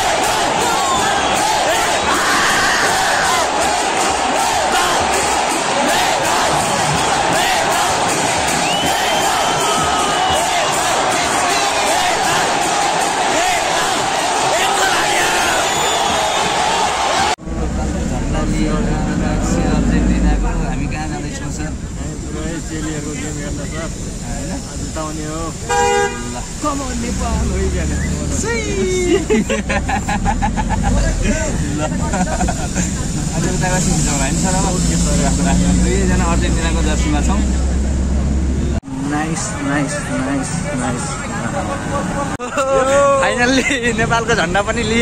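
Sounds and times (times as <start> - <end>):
busy street traffic: 0.0 - 45.0
van engine and road rumble: 17.4 - 38.8
vehicle horn honking: 25.6 - 26.6.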